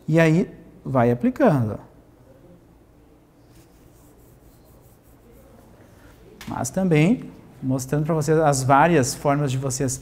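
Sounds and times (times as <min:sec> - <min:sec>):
gloved fingers rubbing hair: 0:03.5 - 0:05.6.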